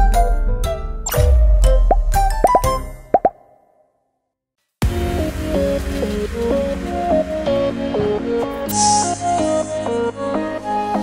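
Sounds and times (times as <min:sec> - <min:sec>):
background music: 0:04.8 - 0:11.0.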